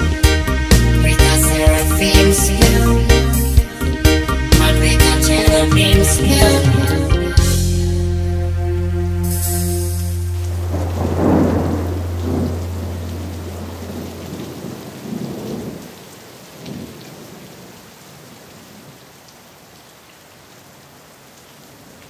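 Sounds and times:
steady rain: 0.0 - 7.6, 8.4 - 22.0
low steady tone: 9.3 - 14.2
thunder rumbling: 10.2 - 17.7.

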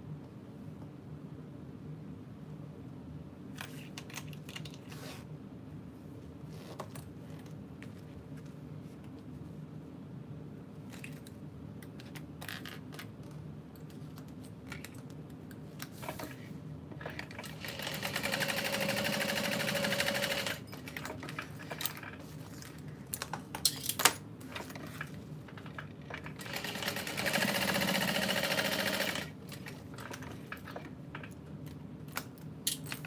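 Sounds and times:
sewing machine stitching: 17.0 - 21.8, 26.2 - 30.8.

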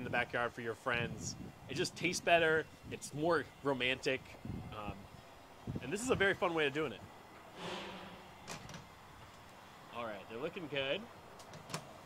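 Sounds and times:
soft rushing noise: 7.4 - 9.1.

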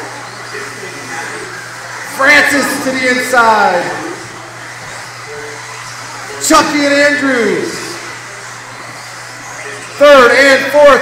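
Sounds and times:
radio-control buggies whirring: 0.0 - 11.0.

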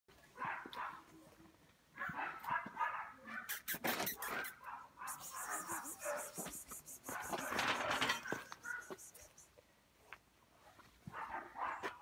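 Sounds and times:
puppy yipping: 2.0 - 9.5.

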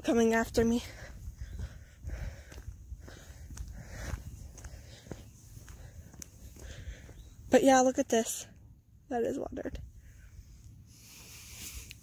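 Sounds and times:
footsteps on asphalt: 0.0 - 8.4.

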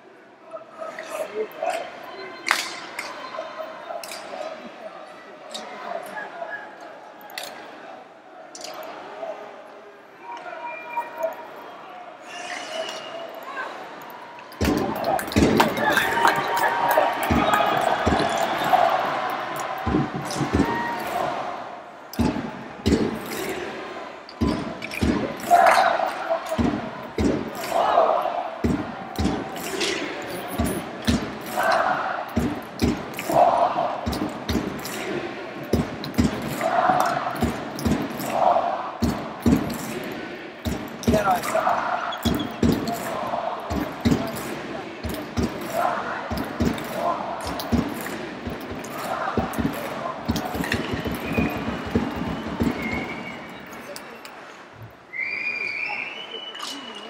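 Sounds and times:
crowd chanting: 6.9 - 54.7
sharp rhythmic thumps: 14.6 - 21.6, 22.2 - 28.0, 28.6 - 53.6.

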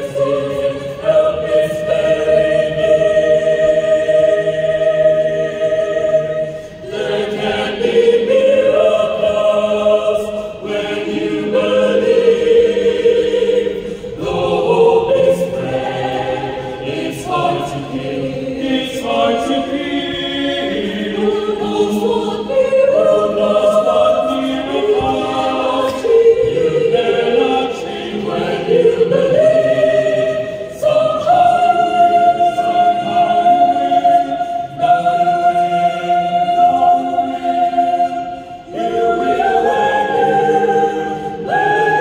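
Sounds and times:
mixed choir singing in harmony: 0.0 - 42.0.

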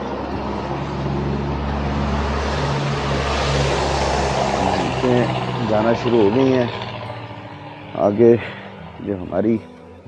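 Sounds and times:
engine running: 0.0 - 10.0
tyres hissing on wet road: 0.1 - 9.0.

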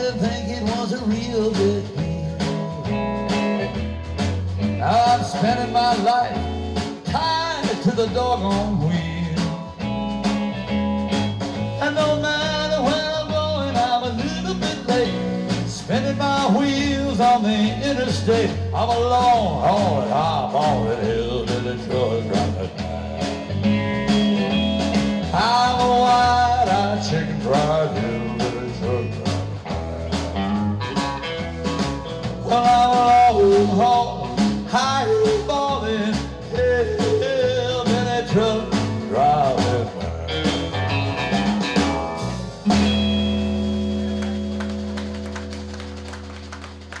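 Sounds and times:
bass: 0.0 - 47.0
drums: 0.0 - 47.0
electric guitar lead with bends: 0.0 - 47.0.

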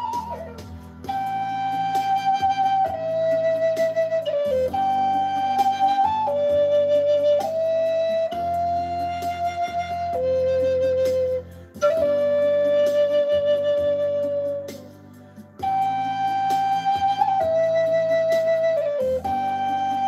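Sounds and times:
wooden flute slow melody: 0.0 - 20.0.

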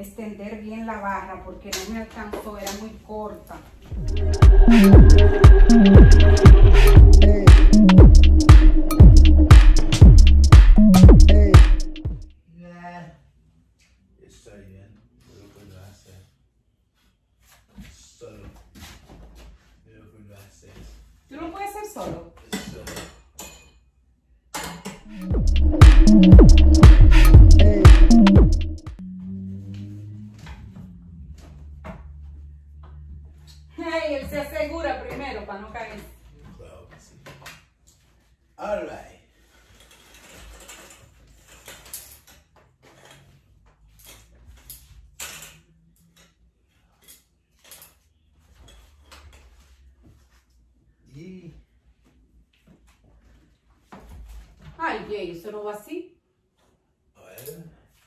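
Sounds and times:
curtain sliding along metal rod: 39.5 - 45.5.

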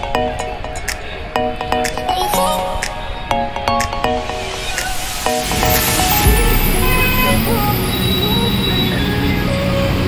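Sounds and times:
cars passing: 4.0 - 10.0
low engine rumble: 5.4 - 10.0.

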